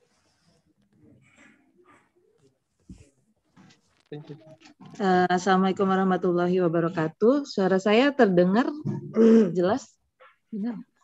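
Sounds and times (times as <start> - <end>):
low thump on microphone: 8.8 - 9.2.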